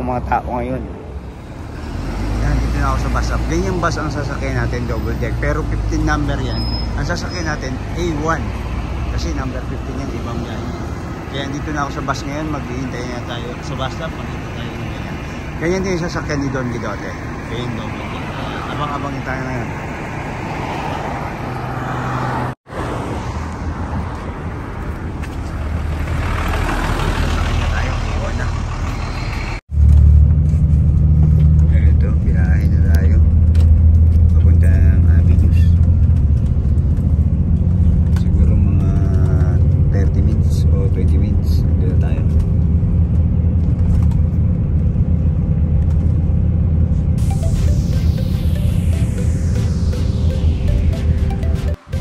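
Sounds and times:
bus engine rumble: 0.0s - 50.6s
road traffic: 0.0s - 52.0s
car driving past: 12.5s - 24.8s, 25.4s - 31.6s.

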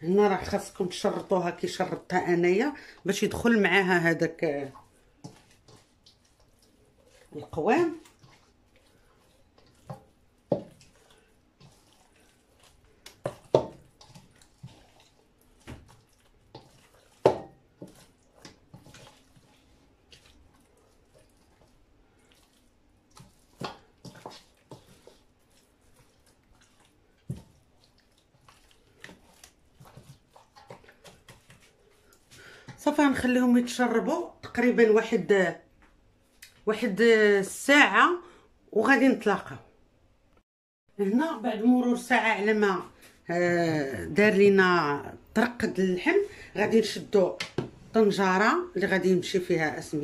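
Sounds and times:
hands squelching marinade into meat: 0.3s - 32.8s.

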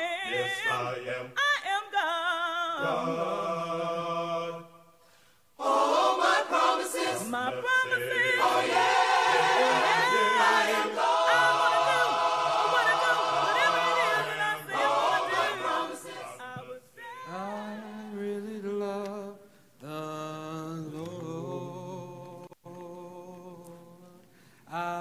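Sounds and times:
choir singing a hymn a cappella: 0.0s - 5.0s, 5.6s - 18.8s.

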